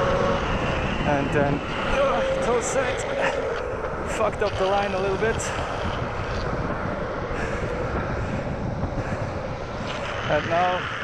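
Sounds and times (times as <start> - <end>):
longboard wheels rolling on asphalt: 0.0 - 11.0
wind buffeting microphone: 0.0 - 11.0.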